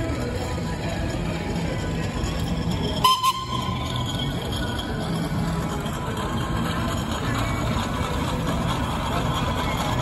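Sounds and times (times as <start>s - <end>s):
steam whistle toot: 3.0s - 3.7s.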